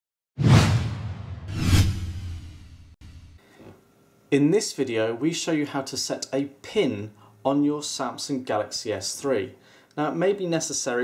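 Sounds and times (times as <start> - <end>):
whoosh sound effects: 0.4 - 3.4.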